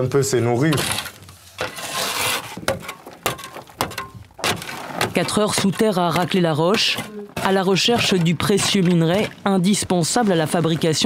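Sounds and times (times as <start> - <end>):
hand tool scraping rock: 0.6 - 11.0.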